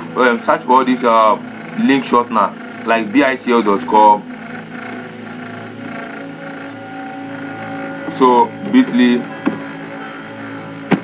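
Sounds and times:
steady background hum: 2.5 - 11.0.

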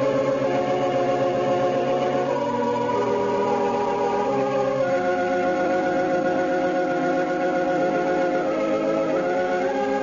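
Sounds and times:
organ sustained chord: 0.0 - 10.0.

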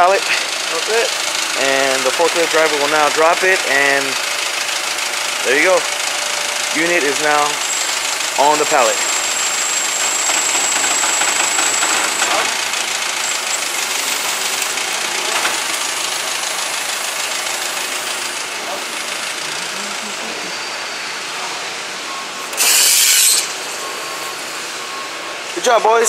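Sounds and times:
forklift engine running: 0.0 - 26.0.

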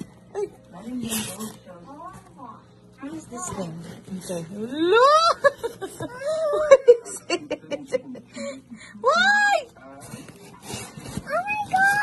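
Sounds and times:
rustling of cloth and packaging: 0.0 - 4.8, 9.4 - 12.0.

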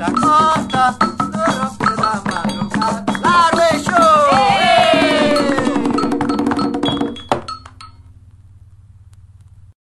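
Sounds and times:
hand percussion striking in rhythm: 0.0 - 8.0
chant singing: 3.2 - 6.2.

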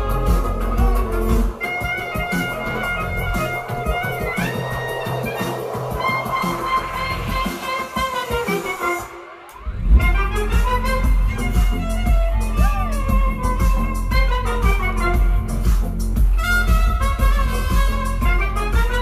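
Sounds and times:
bass beat: 0.0 - 19.0
electronic dance music: 0.0 - 19.0
rising glide: 0.0 - 19.0
violin woodwind and trumpet melody: 0.0 - 19.0.

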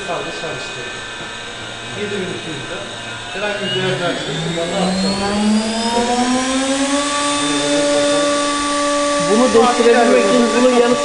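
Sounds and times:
router spindle motor whine: 0.0 - 11.0.

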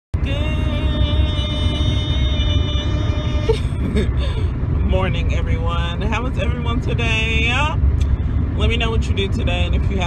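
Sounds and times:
road rumble inside moving car: 0.2 - 10.0
person laughing: 3.4 - 4.5.

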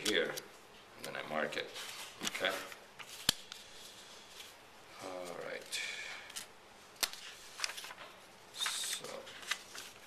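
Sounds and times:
paper rustling: 6.3 - 10.0.

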